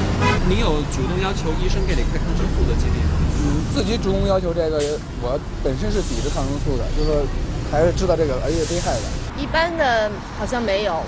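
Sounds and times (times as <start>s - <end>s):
city street traffic rumble: 0.0s - 11.0s.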